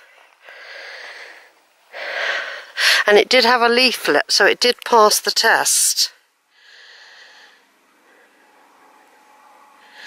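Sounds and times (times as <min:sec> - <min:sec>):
woman breathing close to microphone: 0:00.0 - 0:03.0, 0:06.4 - 0:10.0.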